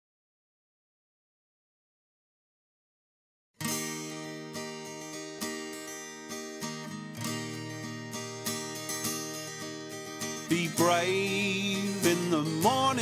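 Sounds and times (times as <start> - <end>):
acoustic guitar picked chords: 3.6 - 13.0.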